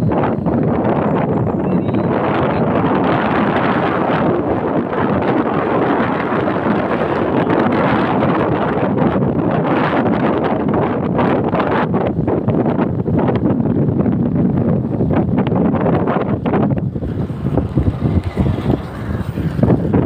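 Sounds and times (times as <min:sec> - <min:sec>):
wind buffeting microphone: 0:00.0 - 0:20.0
motorcycle running: 0:16.5 - 0:20.0.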